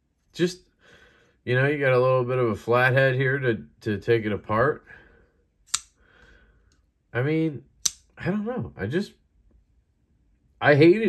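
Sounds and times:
folding knife blade click: 0:05.7 - 0:06.0, 0:07.8 - 0:08.1.

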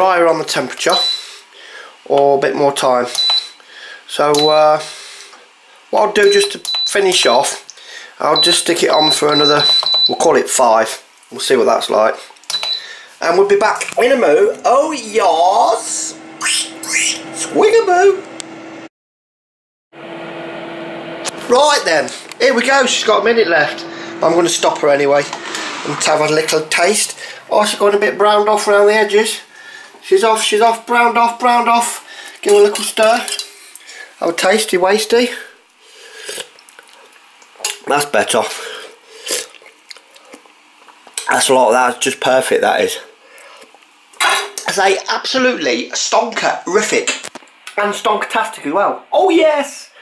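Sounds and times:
man talking: 0:00.0 - 0:01.1, 0:04.1 - 0:05.0, 0:05.9 - 0:12.3, 0:13.2 - 0:18.3, 0:21.4 - 0:33.4, 0:34.2 - 0:35.6, 0:37.8 - 0:38.7, 0:41.2 - 0:43.1, 0:44.6 - 0:49.9
oven fan whirring: 0:12.8 - 0:18.9, 0:20.0 - 0:33.4
low hum: 0:14.5 - 0:18.9, 0:20.0 - 0:29.8.

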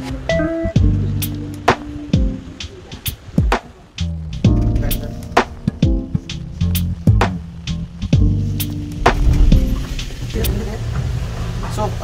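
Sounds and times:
low machinery hum: 0:06.0 - 0:11.7.

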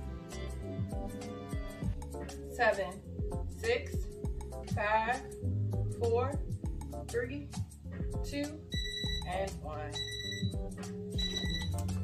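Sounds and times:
background music: 0:00.0 - 0:12.0
timer alarm beeping: 0:08.7 - 0:12.0.

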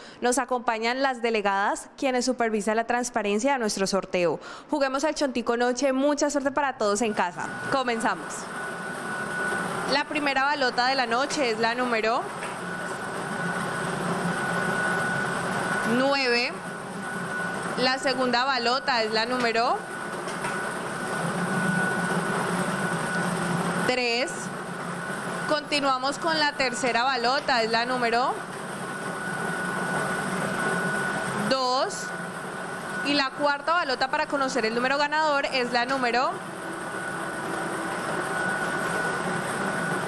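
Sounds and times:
air blower running with whine: 0:00.0 - 0:00.2, 0:06.9 - 0:40.0.

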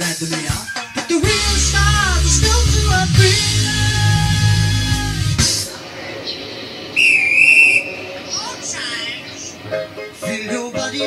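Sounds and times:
high whistle blast: 0:05.6 - 0:08.7.

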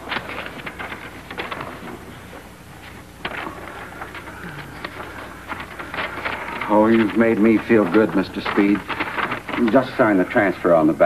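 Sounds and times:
film soundtrack hum and hiss: 0:00.0 - 0:11.0
paper rustling and crackling: 0:00.0 - 0:11.0.

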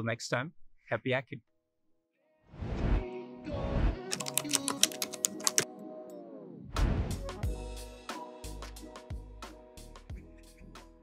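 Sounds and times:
whooshes: 0:02.6 - 0:03.0
keyboard typing clicks: 0:04.1 - 0:05.7.

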